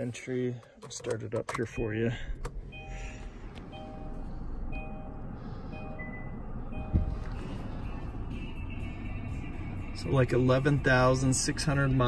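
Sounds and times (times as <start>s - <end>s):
dashboard warning chime: 2.6s - 8.6s
dull thump: 6.8s - 7.4s.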